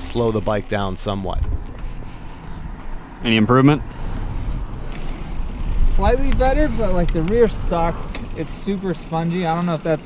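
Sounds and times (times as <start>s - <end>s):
wind noise: 0.0s - 8.4s
bike tires rolling on asphalt: 0.0s - 10.0s.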